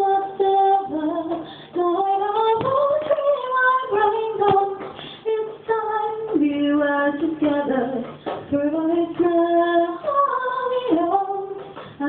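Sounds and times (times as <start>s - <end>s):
woman singing folk song: 0.0s - 12.0s.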